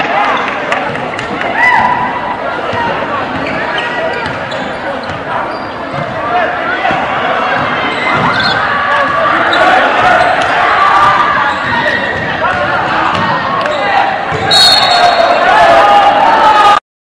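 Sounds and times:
spectators talking and calling: 0.0 - 16.8.

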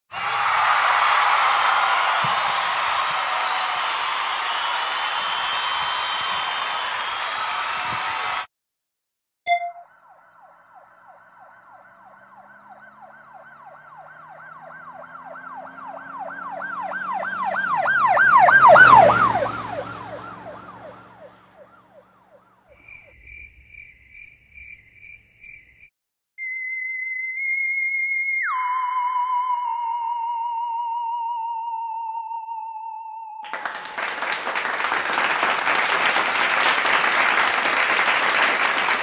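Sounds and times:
emergency siren yelping: 9.8 - 22.7, 28.4 - 33.4.

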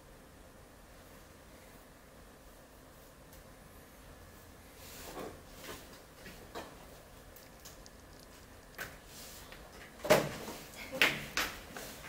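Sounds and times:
faint clicks and ticks: 7.3 - 9.9.

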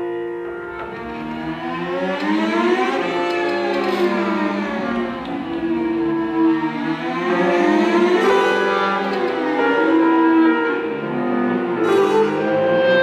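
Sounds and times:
clarinet cello and piano music: 0.0 - 13.0.

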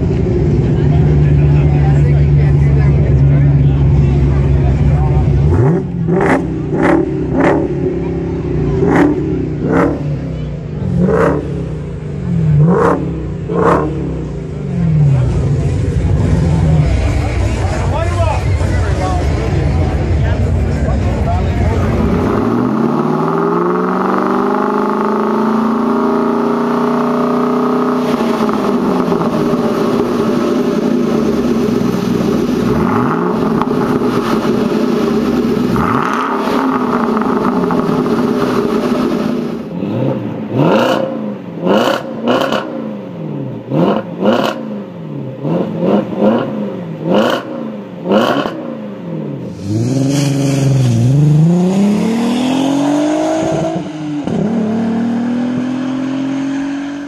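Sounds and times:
car engine revving: 0.0 - 57.0
second car engine revving: 0.0 - 57.0.

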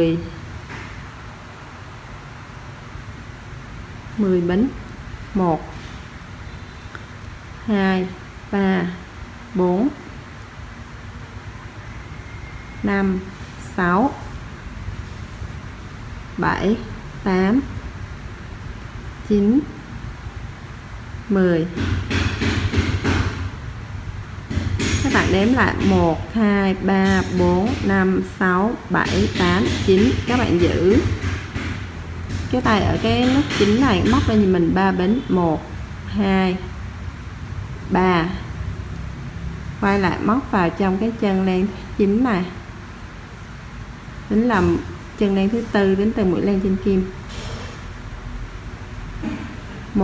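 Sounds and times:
short sharp hiss: 47.3 - 47.9.

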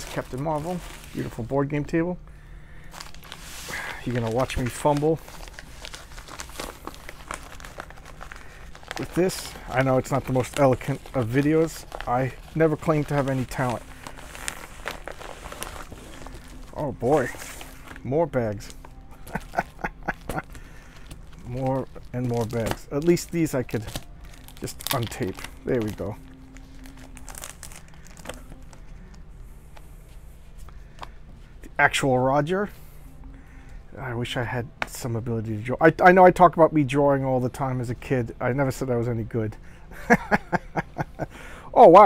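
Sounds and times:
paper envelope crinkling: 0.0 - 1.5, 2.8 - 29.2.

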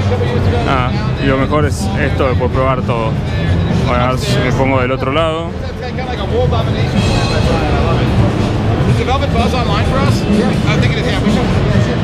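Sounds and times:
crowded hall background noise: 0.0 - 12.0
people talking: 0.0 - 12.0.

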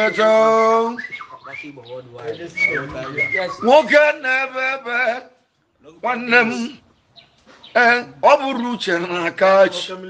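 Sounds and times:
man singing: 7.8 - 10.0.

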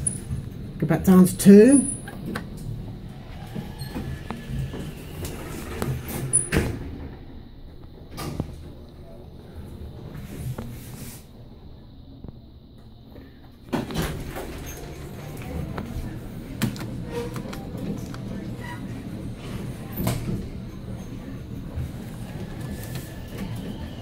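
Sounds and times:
elevator hum: 0.0 - 24.0.

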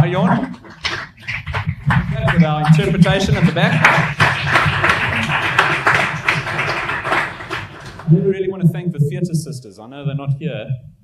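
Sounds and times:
audience applause: 0.3 - 8.1.

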